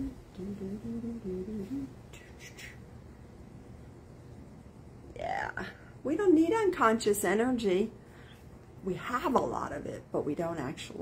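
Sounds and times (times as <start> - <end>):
woman humming a tune: 0.0 - 2.8.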